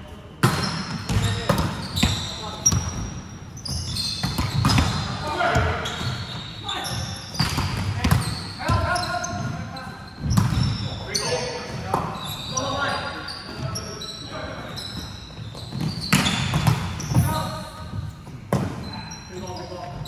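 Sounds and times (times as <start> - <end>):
sneakers squeaking on floor: 0.0 - 20.0.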